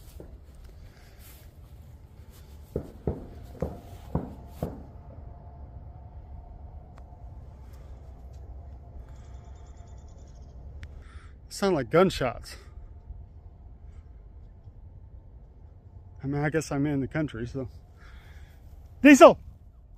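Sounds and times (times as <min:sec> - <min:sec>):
steady low rumble: 0:00.0 - 0:19.9.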